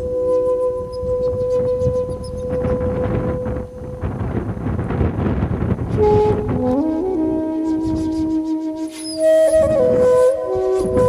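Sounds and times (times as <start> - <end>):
flute music: 0.0 - 4.0, 5.8 - 11.0
gusting wind: 0.0 - 11.0.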